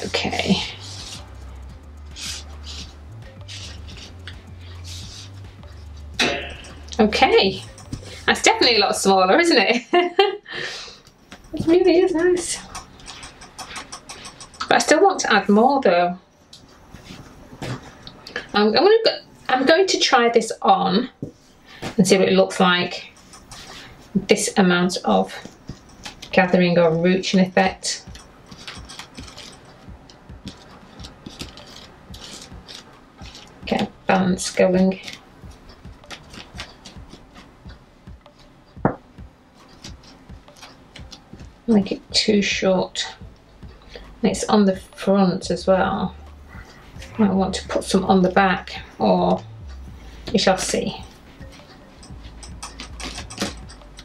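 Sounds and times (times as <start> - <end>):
fabric rustling: 0.0 - 9.2, 16.6 - 19.8, 28.0 - 42.2
quiet background music: 0.0 - 54.0.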